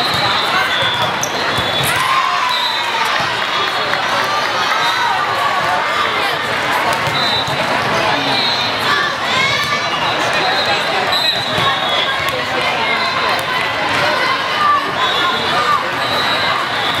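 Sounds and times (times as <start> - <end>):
babble of many voices: 0.0 - 17.0.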